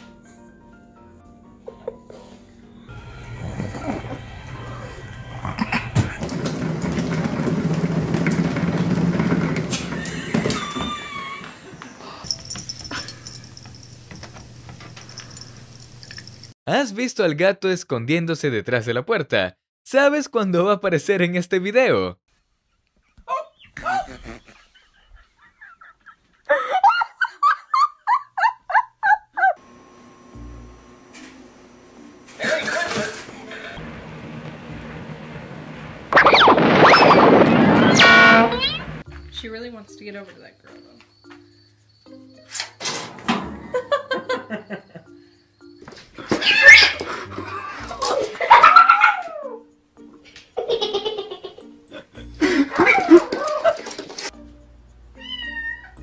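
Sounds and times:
exercise wheel rolling rumble: 0:03.2 - 0:12.0, 0:32.4 - 0:39.0
person laughing hard: 0:10.0 - 0:11.7, 0:23.8 - 0:29.6, 0:32.4 - 0:33.2, 0:50.6 - 0:54.0
wavering animal cry: 0:46.3 - 0:47.9, 0:48.5 - 0:49.7.

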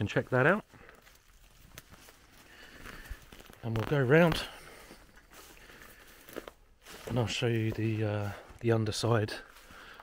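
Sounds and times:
footsteps crunching dry leaves: 0:00.0 - 0:10.0.

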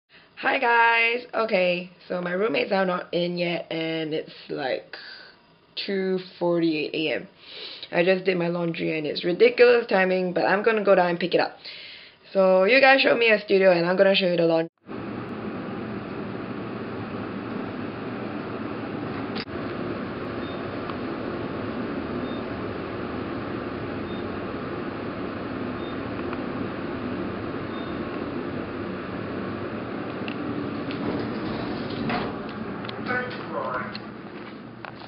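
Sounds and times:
elevator hum and rumble: 0:14.9 - 0:35.0
faint high beep: 0:27.7 - 0:28.0.

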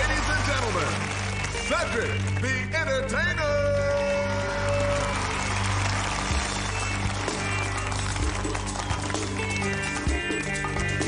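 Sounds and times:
audience cheering and applause: 0:00.0 - 0:02.7, 0:03.4 - 0:11.0
show-band music: 0:00.0 - 0:11.0.

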